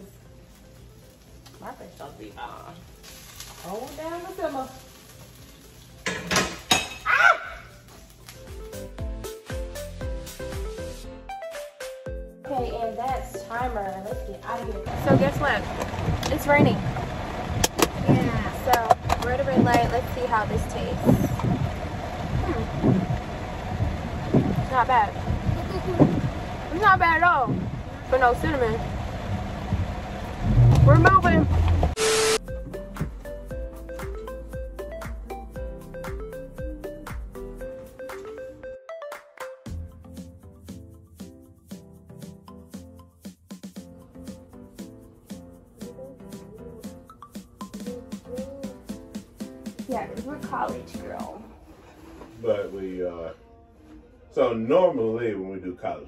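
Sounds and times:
woman speaking: 0:12.4 - 0:16.8, 0:18.0 - 0:21.4, 0:24.6 - 0:25.2, 0:26.7 - 0:28.8, 0:30.8 - 0:31.6, 0:49.9 - 0:51.6
car rumble inside cabin: 0:14.9 - 0:32.0.

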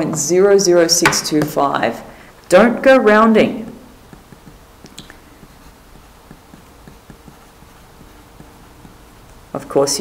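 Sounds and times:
pen writing on paper: 0:04.1 - 0:09.4.

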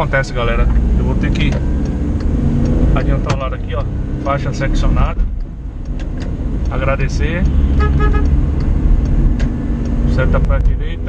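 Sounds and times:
vehicle engine and road noise: 0:00.0 - 0:11.0.

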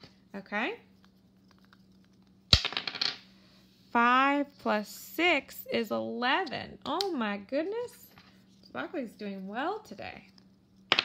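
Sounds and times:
dice clattering on tabletop: 0:02.5 - 0:03.2.

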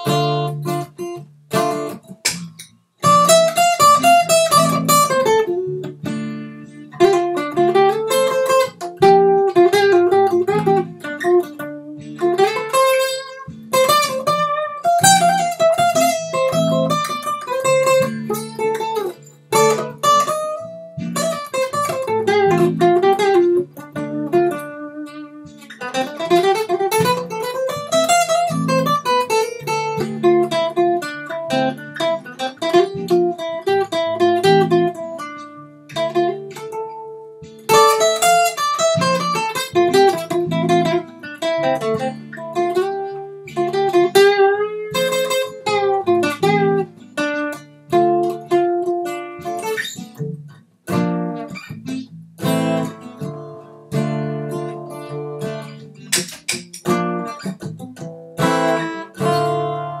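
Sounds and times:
acoustic guitar playing: 0:00.0 - 1:00.0.

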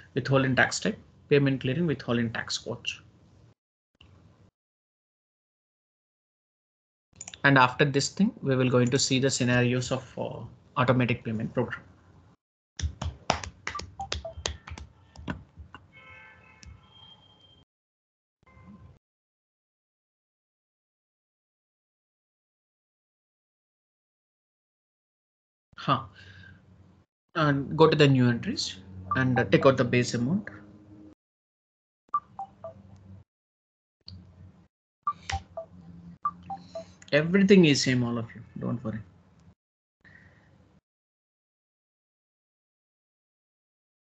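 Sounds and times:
keyboard typing: 0:12.8 - 0:15.8, 0:35.1 - 0:35.7
falling electronic beeps: 0:35.1 - 0:36.9.

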